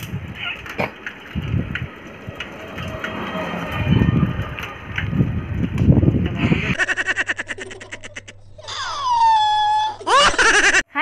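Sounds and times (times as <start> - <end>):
wind buffeting microphone: 0.0 - 6.8
laughing sound effect: 6.5 - 10.8.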